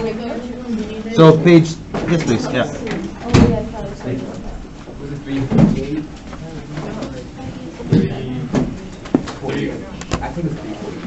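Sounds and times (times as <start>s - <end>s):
low voices talking: 0.0s - 11.0s.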